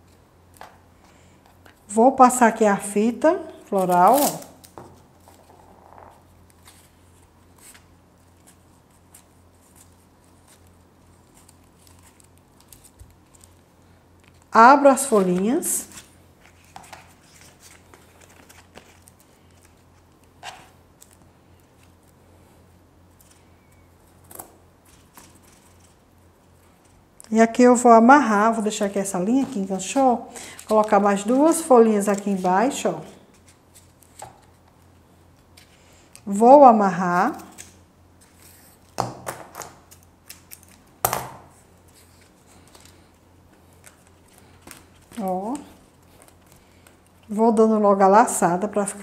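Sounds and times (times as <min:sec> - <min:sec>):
low steady hum: 0:00.0 - 0:49.0.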